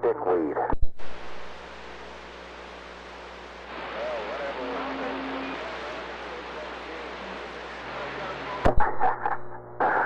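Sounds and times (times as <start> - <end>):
radio static hiss: 0.0 - 10.0
steady radio tone: 0.0 - 10.0
warbling distant radio voice: 3.7 - 9.2.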